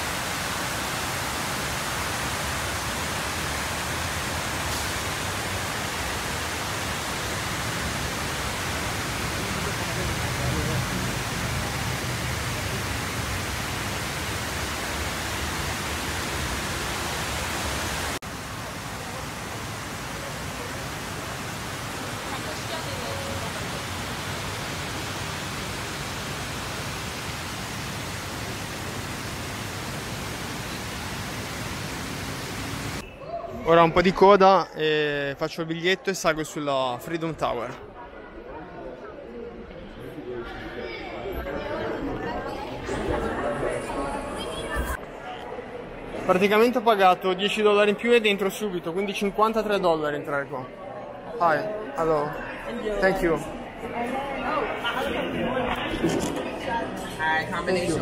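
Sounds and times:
water falling down stone walls: 0.0 - 33.0.

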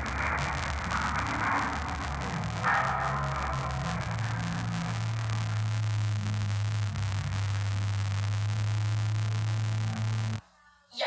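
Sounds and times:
low electrical hum: 0.0 - 10.4.

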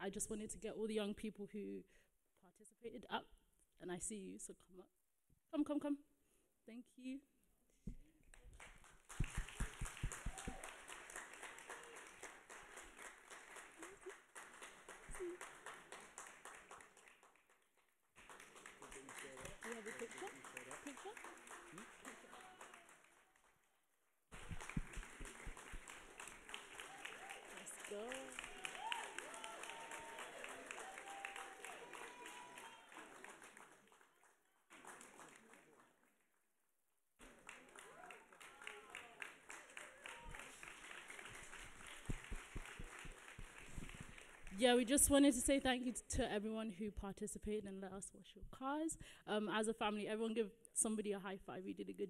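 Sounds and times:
audience applauding: 8.3 - 36.1, 37.2 - 44.8.

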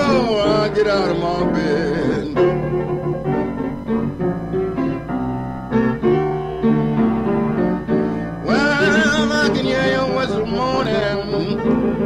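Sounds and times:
person singing: 0.0 - 2.5, 8.4 - 11.7
blues piano chords: 0.0 - 12.0.

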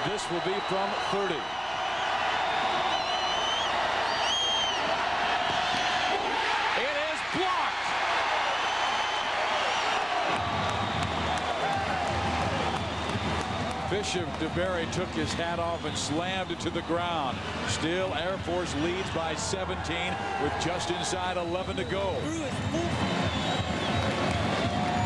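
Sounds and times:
stadium crowd cheering: 0.0 - 25.0
whoops and whistles: 0.2 - 4.9, 8.4 - 13.8, 21.4 - 25.0.

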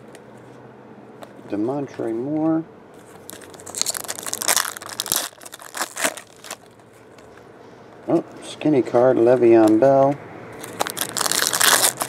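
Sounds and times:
foil wrapper tearing and crinkling: 3.2 - 6.9, 10.6 - 12.0.

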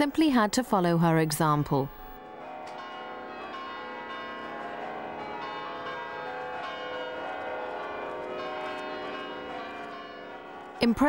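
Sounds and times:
church bells pealing: 2.2 - 11.0.

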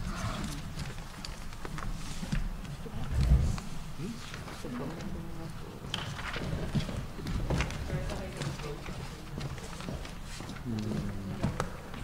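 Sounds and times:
footsteps on wooden floor: 6.4 - 12.0.

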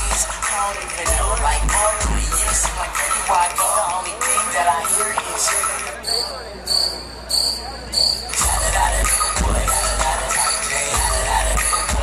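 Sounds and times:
dance music: 0.0 - 12.0
high-pitched chirps: 4.8 - 11.9.

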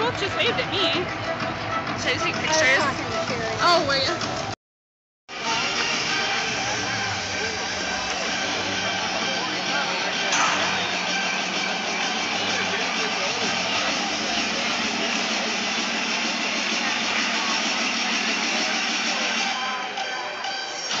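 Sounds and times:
hubbub of many voices: 0.0 - 4.6, 5.3 - 21.0
music over speakers: 0.0 - 4.6, 5.3 - 21.0.

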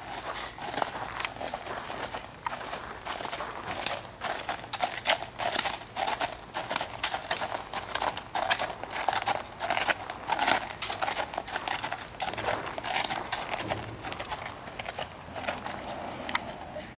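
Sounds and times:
hoofbeats crunching on gravel: 0.0 - 16.8.

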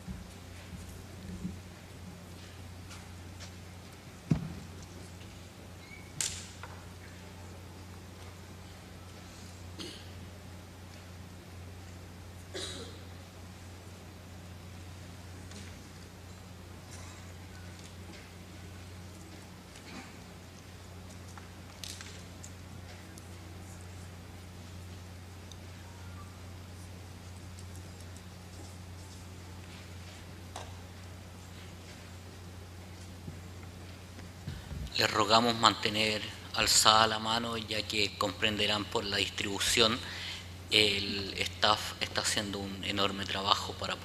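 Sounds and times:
low electrical hum: 0.0 - 44.0
faint clicks and rustles: 14.4 - 35.0.

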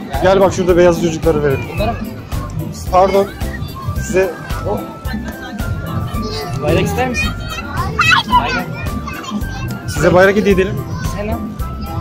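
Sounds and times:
background music: 0.0 - 12.0
children chattering in crowd: 0.0 - 12.0.

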